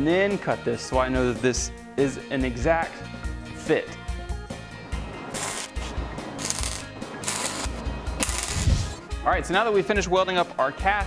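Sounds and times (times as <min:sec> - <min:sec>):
music with steady beat: 0:03.0 - 0:10.1
welding crackle: 0:05.3 - 0:09.0.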